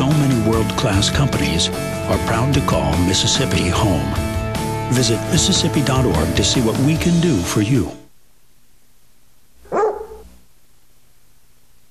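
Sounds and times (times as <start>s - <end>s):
dog bark: 9.6s - 10.4s.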